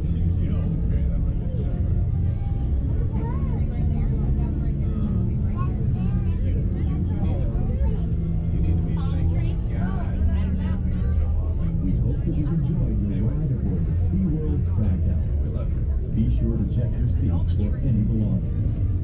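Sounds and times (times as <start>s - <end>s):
indistinct chatter: 0.0s - 19.0s
low machine rumble: 0.0s - 19.0s.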